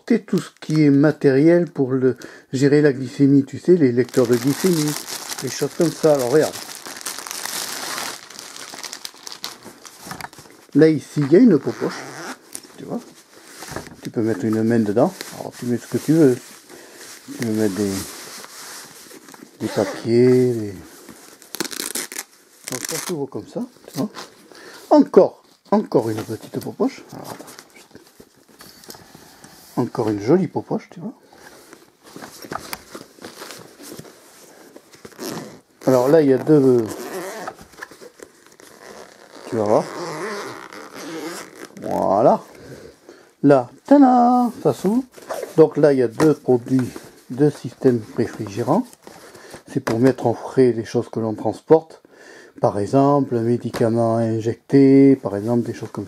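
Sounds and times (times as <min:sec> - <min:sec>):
plastic wrapping crinkling: 0:03.7 - 0:24.5, 0:31.4 - 0:42.8, 0:44.1 - 0:50.2
fabric bag rustling: 0:03.9 - 0:24.4, 0:31.4 - 0:42.9.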